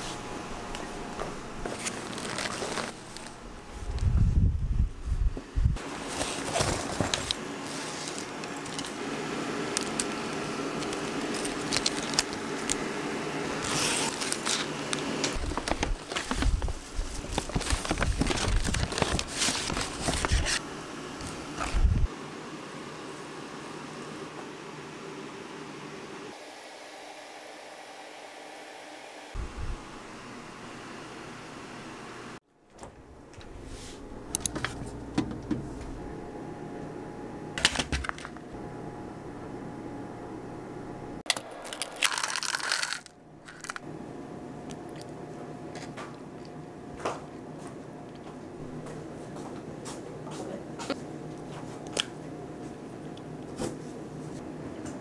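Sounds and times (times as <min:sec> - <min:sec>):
plastic sachets rustling and crinkling: 0:01.6 - 0:04.0, 0:05.8 - 0:09.0, 0:09.6 - 0:12.8, 0:13.6 - 0:20.6, 0:41.6 - 0:43.8.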